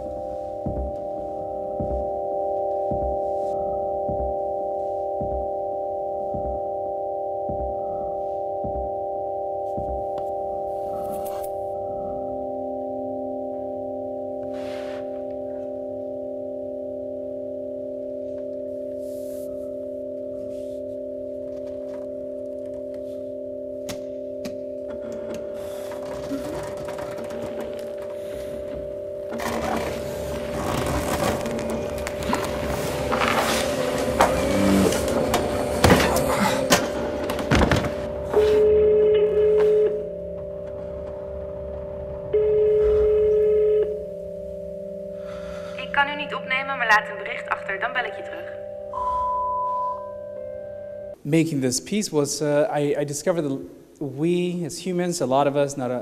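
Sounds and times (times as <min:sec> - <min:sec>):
soft low thumps: 0:00.0 - 0:10.7
electronic drone music: 0:00.0 - 0:22.0, 0:22.7 - 0:46.0.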